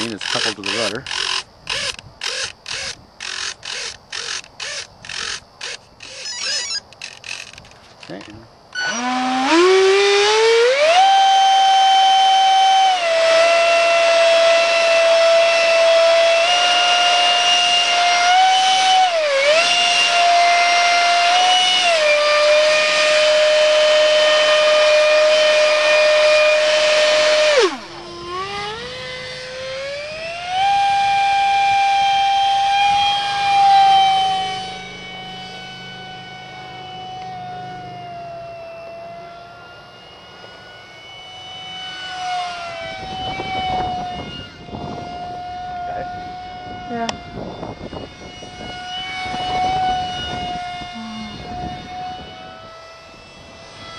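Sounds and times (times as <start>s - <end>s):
electric motor and propeller whine: 0.0s - 53.9s.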